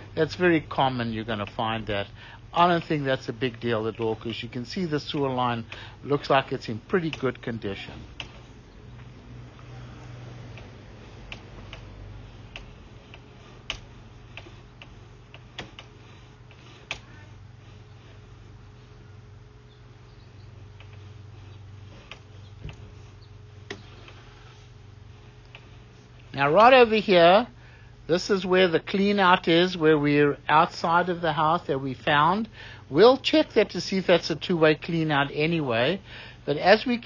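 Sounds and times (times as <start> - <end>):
machine humming: 0.0 - 37.0
light clicks and ticks: 10.5 - 17.2.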